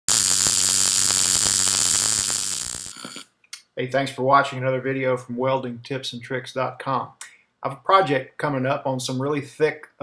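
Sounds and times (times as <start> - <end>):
low hum: 0.0 - 3.2
welding arc hissing: 0.0 - 3.2.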